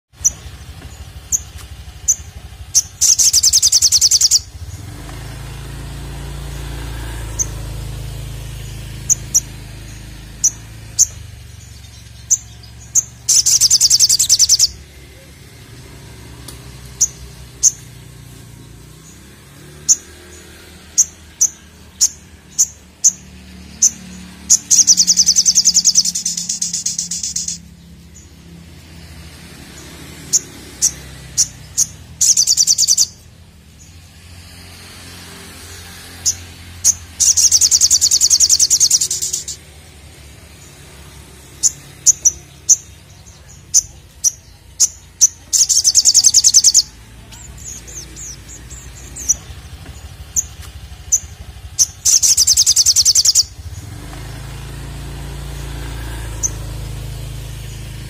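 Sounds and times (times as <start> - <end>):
bird chirping high: 0.1 - 58.0
bird fast loud trill: 1.2 - 4.9, 6.3 - 15.4, 19.0 - 27.7, 30.2 - 33.2, 36.1 - 39.7, 41.3 - 49.5, 51.1 - 53.8.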